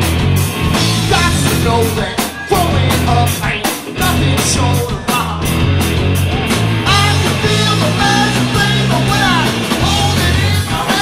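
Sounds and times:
punk rock band playing live: 0:00.0 - 0:11.0
person singing: 0:01.0 - 0:05.6, 0:06.8 - 0:11.0.

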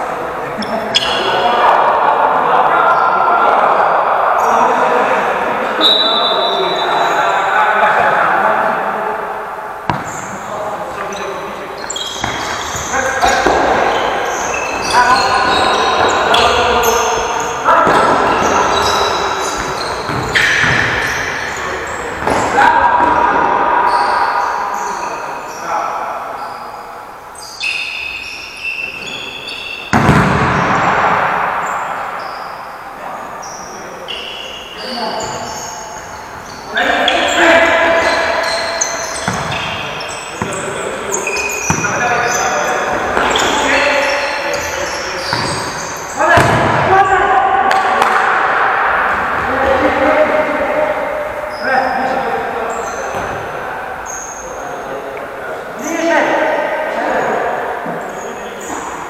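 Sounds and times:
players calling out: 0:00.0 - 0:59.0
ball kicked and bouncing: 0:09.9 - 0:10.1, 0:29.9 - 0:30.7, 0:46.4 - 0:46.8.

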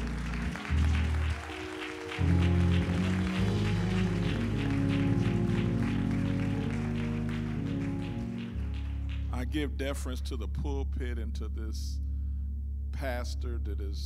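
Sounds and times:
congregation clapping: 0:00.0 - 0:10.2
low instrumental chords: 0:00.0 - 0:14.0.

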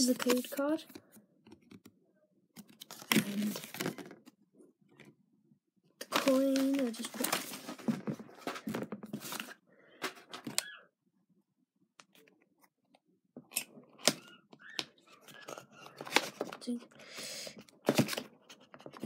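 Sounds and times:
cards clicking and rustling: 0:00.0 - 0:01.9, 0:13.5 - 0:16.8, 0:17.7 - 0:19.0.

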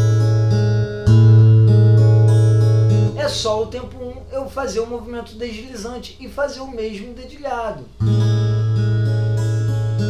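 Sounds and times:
fingerstyle acoustic guitar: 0:00.0 - 0:04.3, 0:07.9 - 0:10.0.

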